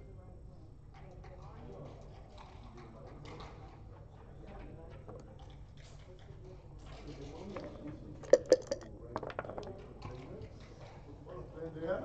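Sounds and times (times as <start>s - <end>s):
clicks and taps of backgammon pieces: 8.3s - 9.8s.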